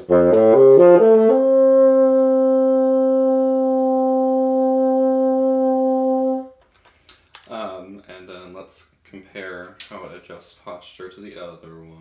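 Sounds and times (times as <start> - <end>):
bassoon holding long note: 0.0 - 6.5.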